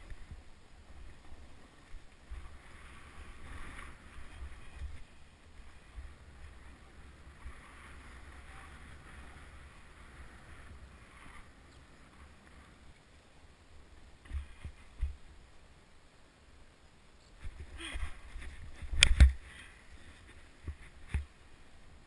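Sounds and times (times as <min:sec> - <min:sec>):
snowboard scraping over snow: 0:00.0 - 0:12.9
wind rumbling on microphone: 0:00.0 - 0:22.0.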